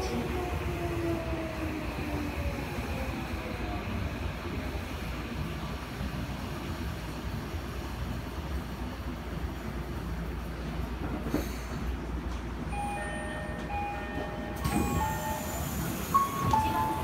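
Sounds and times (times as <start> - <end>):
train wheels rumbling on track: 0.0 - 17.0.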